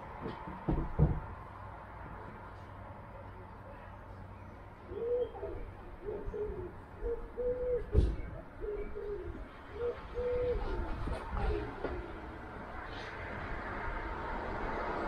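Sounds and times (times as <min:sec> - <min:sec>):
pigeon cooing: 0:04.9 - 0:12.3.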